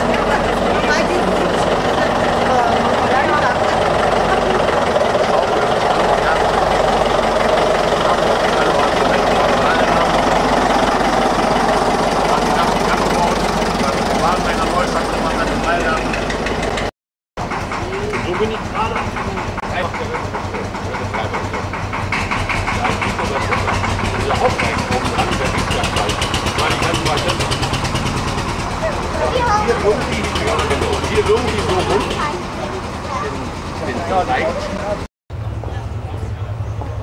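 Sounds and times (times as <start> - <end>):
crowd voices: 0.0 - 16.8, 17.5 - 37.0
engine idling: 0.0 - 37.0.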